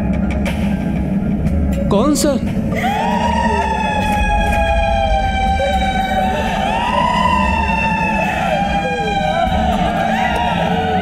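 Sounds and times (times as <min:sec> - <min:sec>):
steady low rumble: 0:00.0 - 0:11.0
siren-like wailing tone: 0:02.7 - 0:11.0.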